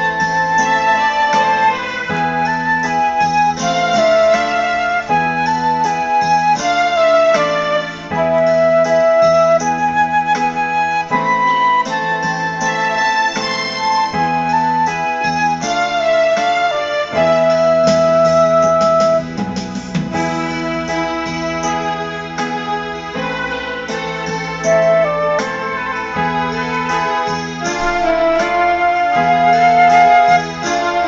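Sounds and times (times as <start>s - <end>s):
electronic keyboard chords: 0.0s - 31.0s
flute melody: 0.0s - 31.0s.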